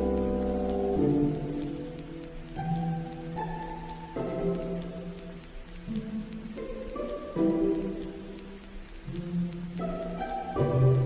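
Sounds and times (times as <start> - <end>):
rain pattering: 0.0 - 11.0.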